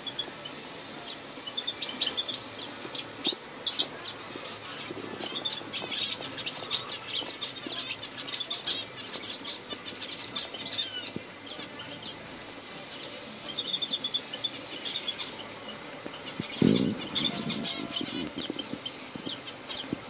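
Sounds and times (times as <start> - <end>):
bird trill: 0.0 - 12.2, 13.0 - 20.0
small birds chirping: 0.0 - 20.0.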